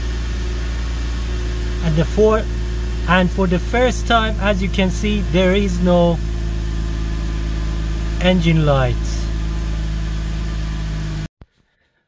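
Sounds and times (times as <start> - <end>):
car engine idling: 0.0 - 11.3.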